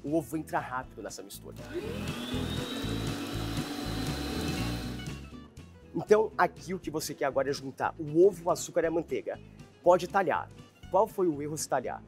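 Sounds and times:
stand mixer motor whining: 1.6s - 5.2s.

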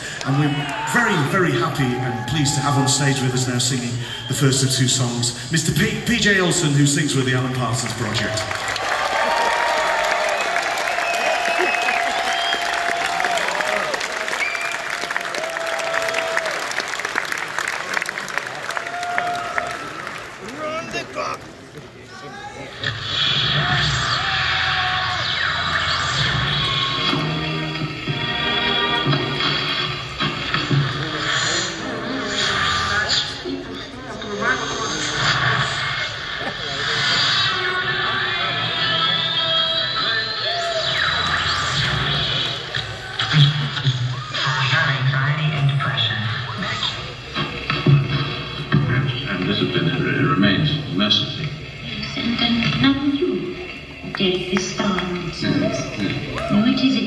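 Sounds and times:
audience voices: 0.0s - 57.0s
live band music in concert hall: 0.0s - 57.0s.

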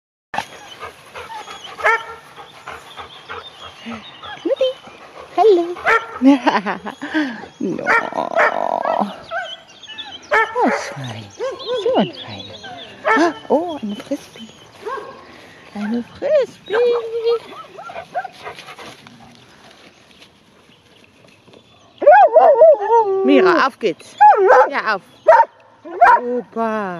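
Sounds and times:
dog barking: 1.8s - 2.2s, 5.8s - 6.2s, 10.3s - 11.0s, 14.8s - 15.2s, 24.2s - 26.3s.

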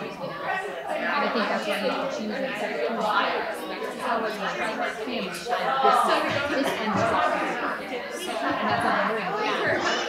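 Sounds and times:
women's voices chattering: 0.0s - 10.0s.

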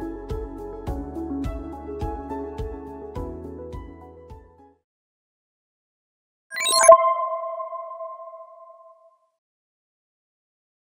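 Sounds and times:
electronic logo sting: 6.5s - 9.0s
bright shimmer: 6.6s - 9.0s
chime-like ping: 6.6s - 9.1s.

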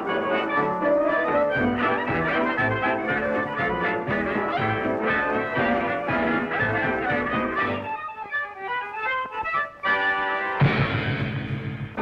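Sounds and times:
cartoon score music: 0.0s - 12.0s.

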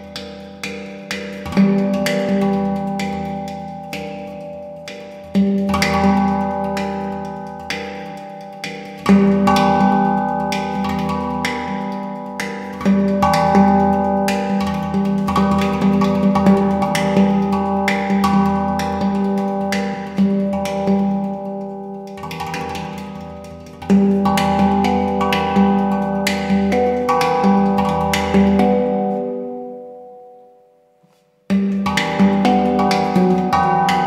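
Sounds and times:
deep handpan note: 0.0s - 29.8s, 31.5s - 34.0s
handpan notes ringing: 0.0s - 30.6s, 31.5s - 34.0s.

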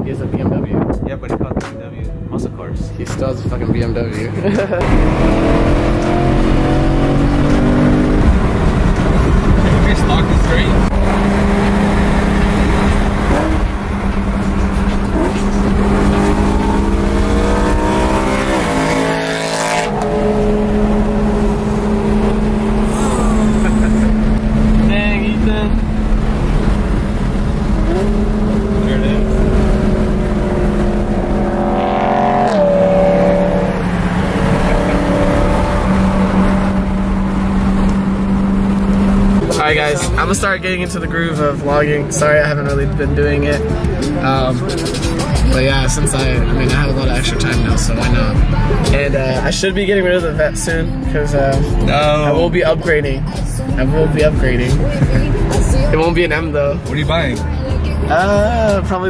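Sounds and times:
road noise: 0.0s - 59.0s
car engine drone: 2.1s - 59.0s.

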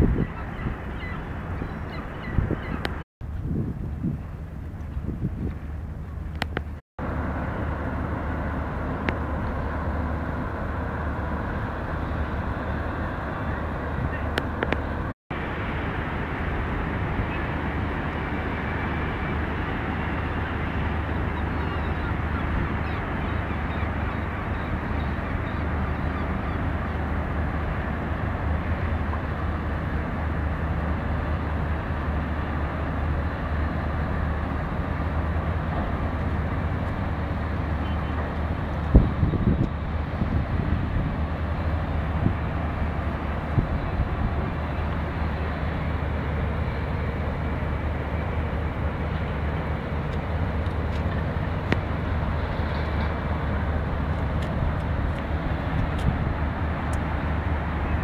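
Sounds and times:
constant low hum: 0.0s - 58.0s
distant traffic roar: 0.0s - 58.0s.

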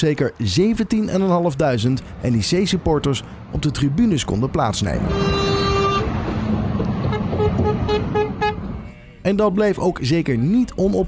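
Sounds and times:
engine and road noise: 0.0s - 11.0s
vehicle horn blast: 5.0s - 6.2s, 7.1s - 9.2s.

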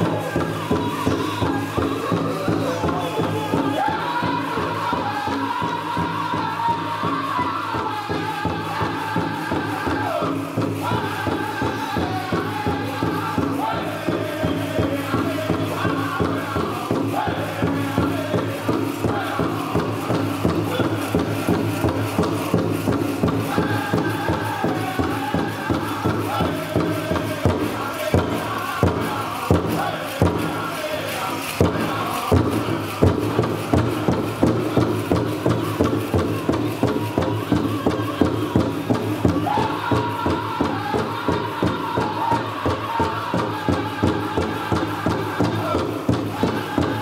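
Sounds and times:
group singing in high voices: 0.0s - 47.0s
large drum beating: 0.0s - 47.0s.

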